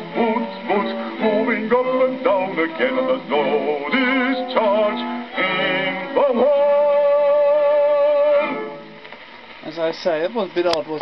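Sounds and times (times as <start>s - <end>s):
bass voice singing with orchestra: 0.0s - 8.9s.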